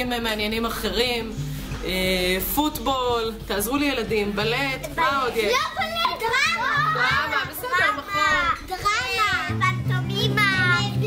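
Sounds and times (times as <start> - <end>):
background music: 0.0 - 11.0
children calling out: 5.6 - 9.6.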